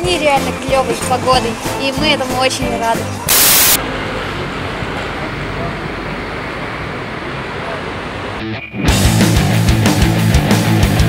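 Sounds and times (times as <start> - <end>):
traffic hum: 0.0 - 8.5.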